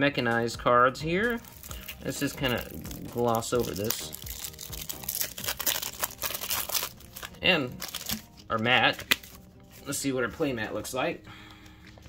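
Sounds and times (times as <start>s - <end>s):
plastic wrap crinkling: 1.2s - 9.9s.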